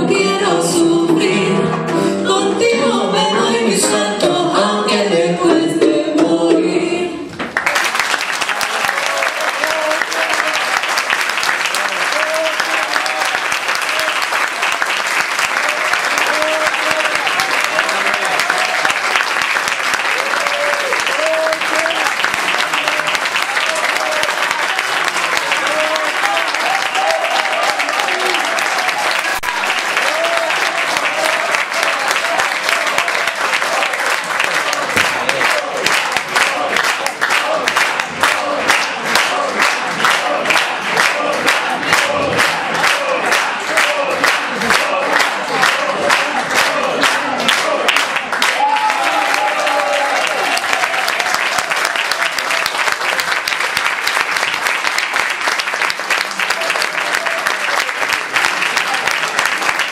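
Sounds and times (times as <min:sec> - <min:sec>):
audience clapping: 0:07.3 - 0:59.9.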